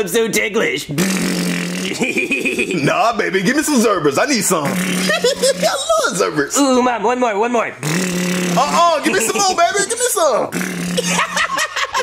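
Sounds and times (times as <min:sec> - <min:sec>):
raspberry blown against belly: 0:00.9 - 0:02.7, 0:04.6 - 0:05.9, 0:07.8 - 0:09.4, 0:10.5 - 0:11.5.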